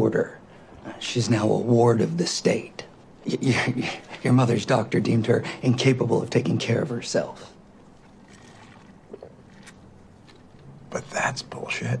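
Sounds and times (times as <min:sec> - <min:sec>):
faint room tone hiss: 0:00.0 - 0:12.0.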